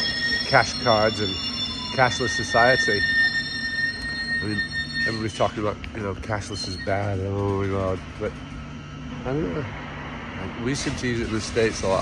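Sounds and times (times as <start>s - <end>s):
train high-pitched whine: 0.0s - 12.0s.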